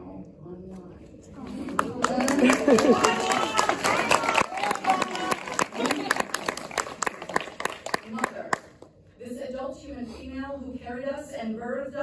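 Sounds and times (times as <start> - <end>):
audience applause: 1.8 - 8.6.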